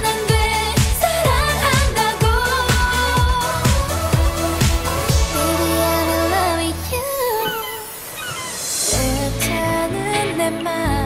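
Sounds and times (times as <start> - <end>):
pop beat with bass and drums: 0.0 - 7.4, 8.8 - 11.0
woman singing vocal run: 0.0 - 11.0.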